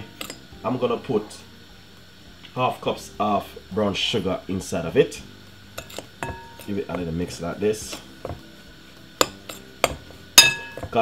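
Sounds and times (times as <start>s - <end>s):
metal spoon clinking glass bowl: 5.8s - 6.8s, 9.2s - 11.0s.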